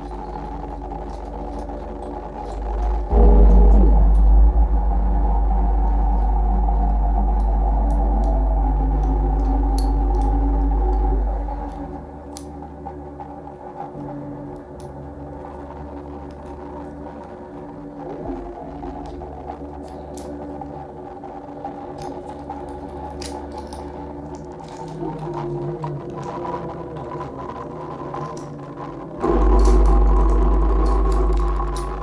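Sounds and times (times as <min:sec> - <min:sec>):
small clicks and crackles: 0:00.0 - 0:04.5, 0:06.2 - 0:32.0
deep bass drone: 0:00.0 - 0:14.2, 0:29.1 - 0:32.0
held overlapping electronic tones: 0:00.0 - 0:32.0.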